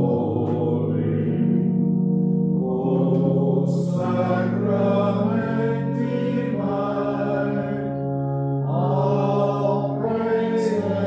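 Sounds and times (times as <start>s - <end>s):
hymn sung in long notes: 0.0s - 1.9s, 2.6s - 11.0s.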